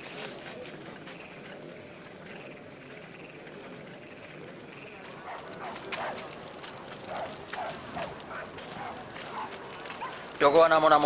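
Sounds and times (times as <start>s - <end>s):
distant dog barking: 5.2s - 6.4s, 7.0s - 10.3s.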